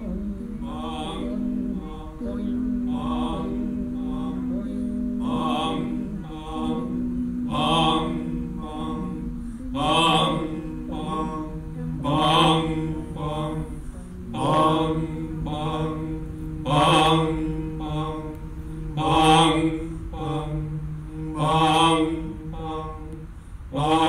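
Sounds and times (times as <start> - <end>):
low hummed vocal drone: 0.0 - 24.0
voices chanting animal calls: 0.0 - 24.0.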